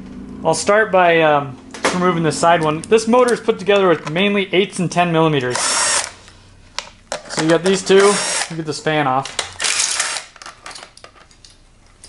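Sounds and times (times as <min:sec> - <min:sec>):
light rattles of plastic and tools: 0:02.6 - 0:04.3, 0:06.7 - 0:08.0, 0:10.4 - 0:12.0
cordless drill spinning a bolt: 0:05.5 - 0:06.2, 0:07.9 - 0:08.6, 0:09.6 - 0:10.4.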